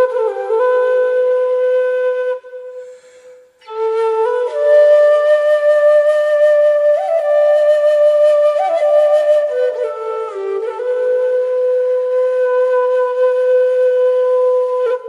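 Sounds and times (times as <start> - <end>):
slow flute melody: 0.0 - 15.0.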